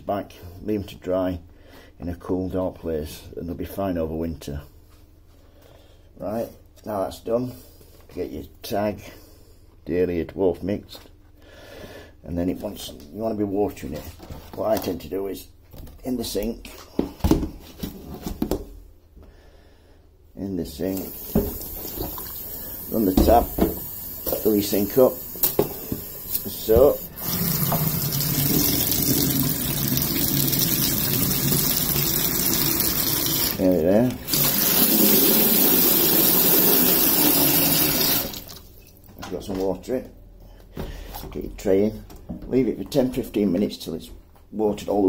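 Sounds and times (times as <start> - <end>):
tap running into a sink: 21.1 - 22.4, 23.0 - 24.5, 25.3 - 33.6.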